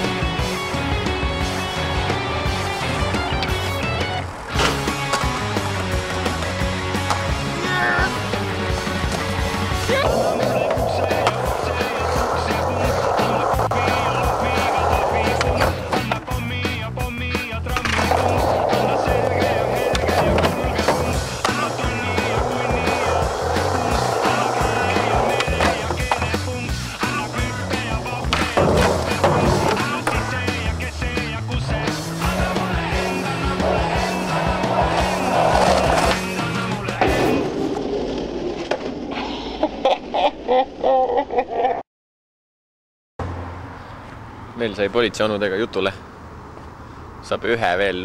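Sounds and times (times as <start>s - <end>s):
music track: 0.0s - 37.4s
skateboard grinding along ledge: 0.0s - 39.9s
skateboard wheels rolling on pavement: 0.0s - 40.8s
skateboard clacks: 1.5s - 7.8s, 8.4s - 30.9s.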